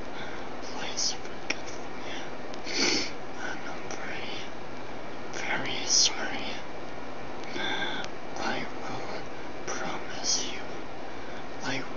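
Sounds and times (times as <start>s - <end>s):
steady background hiss: 0.0s - 11.9s
man whispering: 0.1s - 1.9s, 3.4s - 4.6s, 5.4s - 6.7s, 7.6s - 10.8s, 11.6s - 11.9s.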